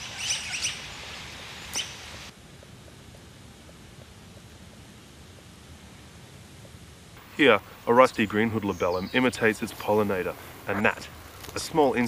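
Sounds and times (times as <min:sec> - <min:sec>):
high bird chirps: 0:00.0 - 0:01.0
outdoor background hiss: 0:00.0 - 0:12.0.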